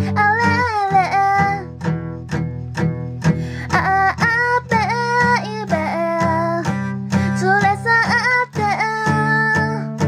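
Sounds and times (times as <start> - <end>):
strummed acoustic guitar: 0.0 - 10.0.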